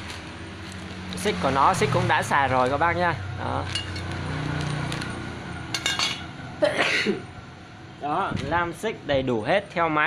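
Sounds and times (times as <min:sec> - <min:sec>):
plastic bag rustling: 0:00.0 - 0:01.8
saw chain clinking: 0:03.6 - 0:06.3.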